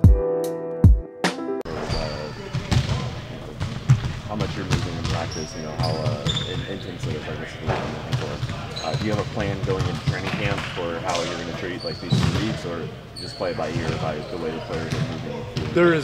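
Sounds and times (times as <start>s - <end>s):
short high squeaks: 1.8s - 2.5s
basketballs bouncing on gym floor: 2.0s - 12.7s, 13.6s - 16.0s.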